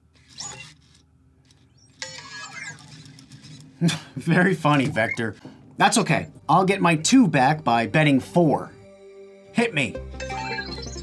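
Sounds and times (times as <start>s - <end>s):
robot electronic chirps: 0.4s - 0.7s, 1.8s - 3.5s, 5.0s - 7.6s, 10.2s - 11.0s.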